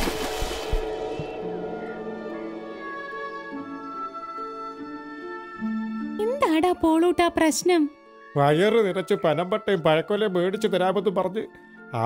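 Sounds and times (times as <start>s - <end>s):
cartoon water splash: 0.0s - 1.0s
soft string music: 0.0s - 12.0s.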